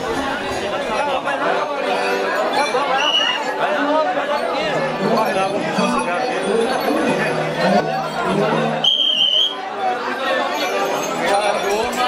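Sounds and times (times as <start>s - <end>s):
crowd chattering: 0.0s - 12.0s
whistle blast: 3.0s - 3.4s, 8.8s - 9.6s.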